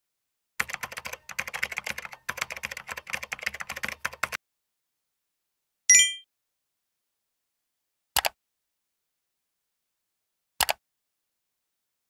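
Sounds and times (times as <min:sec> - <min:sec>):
rapid keyboard typing: 0:00.6 - 0:04.4.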